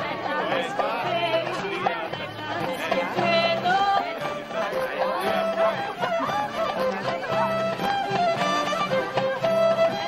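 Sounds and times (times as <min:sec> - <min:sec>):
crowd chattering: 0:00.0 - 0:10.0
fiddle melody: 0:00.0 - 0:10.0.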